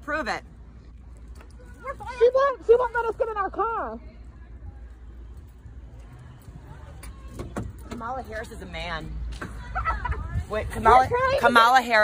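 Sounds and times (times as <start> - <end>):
faint voices: 1.0 - 12.0
wind buffeting microphone: 9.2 - 12.0.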